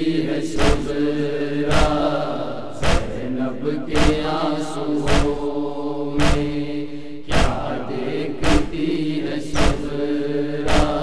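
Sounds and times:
rhythmic chest-beating slaps: 0.0 - 11.0
voices chanting a long note: 0.0 - 11.0.

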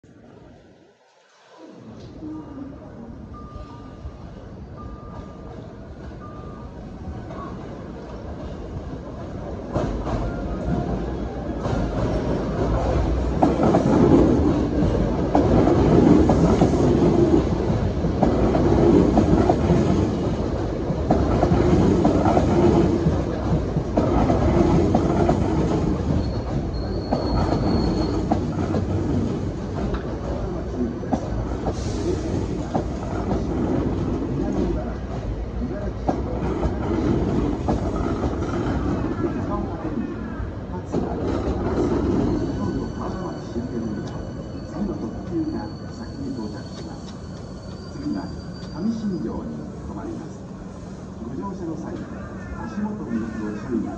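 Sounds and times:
electric train arriving and slowing: 0.1 - 53.9.

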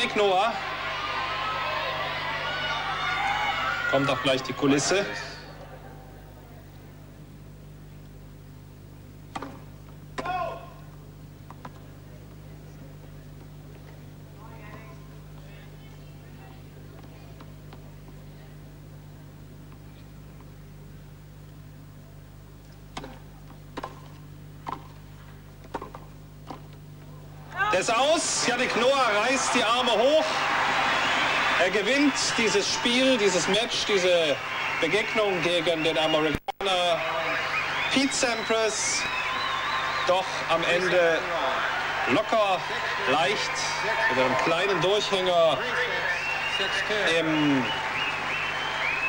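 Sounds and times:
steady low hum: 0.0 - 49.0
tennis ball struck by rackets: 9.3 - 10.3, 22.9 - 25.0.

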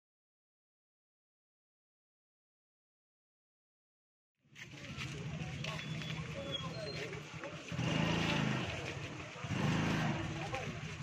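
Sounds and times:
crowd murmur: 4.6 - 11.0
vehicle engine running: 4.7 - 11.0.

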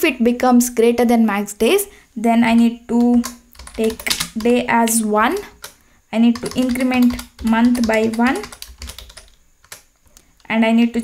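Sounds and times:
keyboard typing: 2.5 - 10.5.

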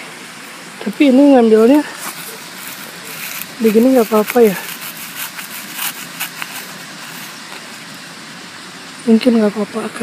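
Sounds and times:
outdoor background rush: 0.0 - 10.0.

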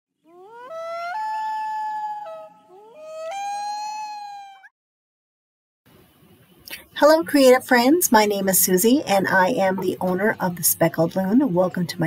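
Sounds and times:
loon wailing: 0.3 - 4.7.

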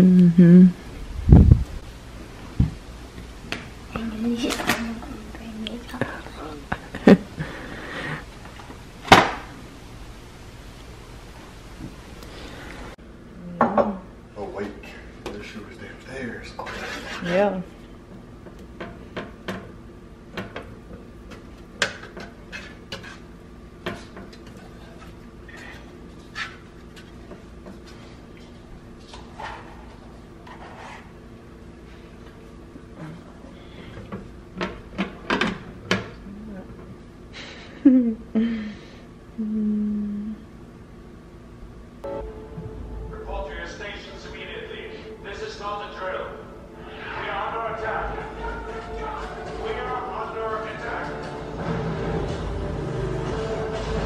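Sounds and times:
person humming softly: 0.0 - 0.8, 13.3 - 13.7, 36.2 - 36.8, 39.4 - 40.5
faint low hum: 24.3 - 54.0.

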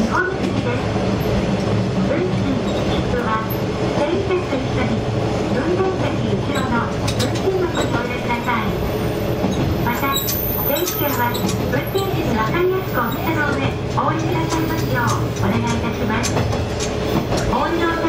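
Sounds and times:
rail clicks: 0.0 - 18.0
rolling train wheels: 0.0 - 18.0.

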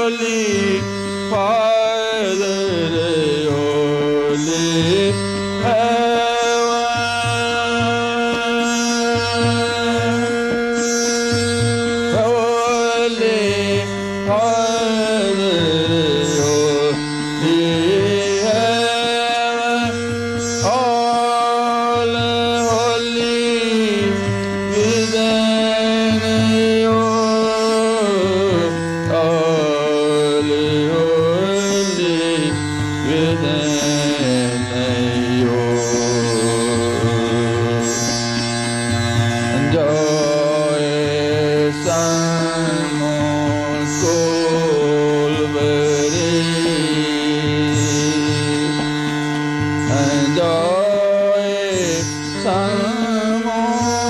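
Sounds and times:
instrumental accompaniment: 0.0 - 54.0
man singing devotional song: 0.0 - 54.0
steady drone: 3.0 - 54.0.

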